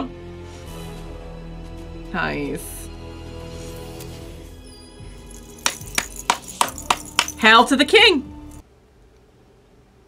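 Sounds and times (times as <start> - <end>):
sharp hand claps: 5.6 - 7.4.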